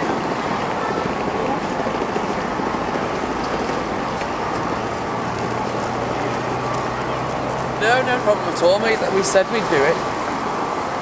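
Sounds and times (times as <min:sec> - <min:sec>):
faint traffic noise: 0:00.0 - 0:11.0
many overlapping voices: 0:00.0 - 0:11.0.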